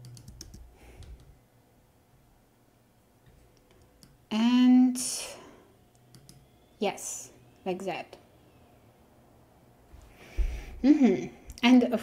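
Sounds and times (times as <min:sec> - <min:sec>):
woman speaking: 0:04.3 - 0:05.4, 0:06.8 - 0:08.2, 0:10.8 - 0:12.0.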